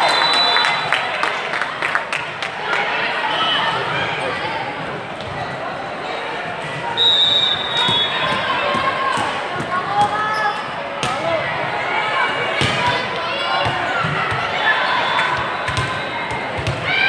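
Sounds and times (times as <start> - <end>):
referee's whistle: 0.0 - 0.9, 7.0 - 8.4
many overlapping voices: 0.0 - 17.0.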